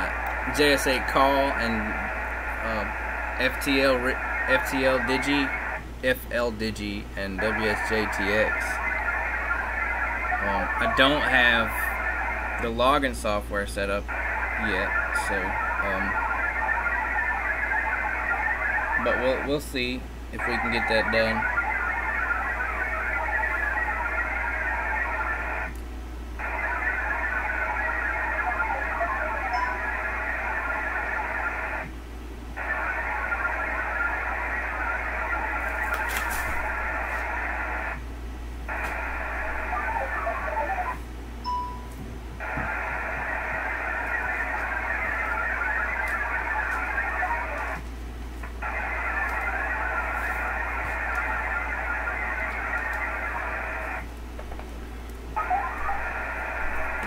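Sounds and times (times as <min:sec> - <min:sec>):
warbling modem data tones: 0:00.0 - 0:25.8, 0:26.4 - 0:47.9, 0:48.6 - 0:54.1, 0:54.8 - 0:57.0
steady low hum: 0:00.0 - 0:57.0.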